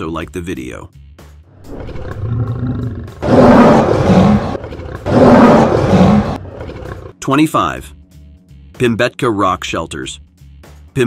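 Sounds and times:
lion roaring: 1.6 - 7.2
low rumble: 3.2 - 6.6.

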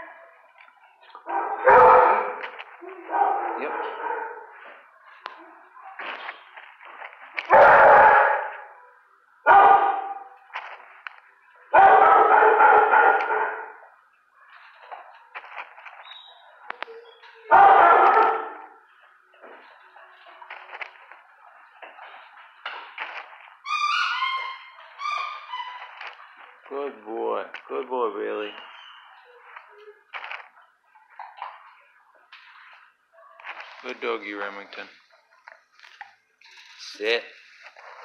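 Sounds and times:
dogs barking with echo: 1.1 - 5.8, 7.4 - 8.8, 9.4 - 10.4, 11.7 - 14.7, 17.4 - 19.0.

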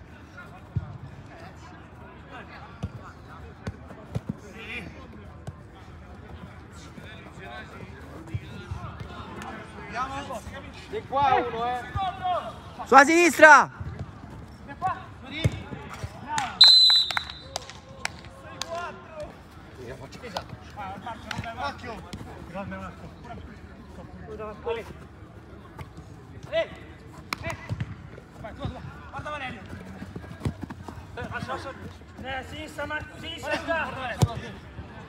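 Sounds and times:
football kicked and bouncing: 3.6 - 4.4, 13.7 - 14.4, 15.4 - 16.2, 29.4 - 31.6, 33.9 - 34.6.

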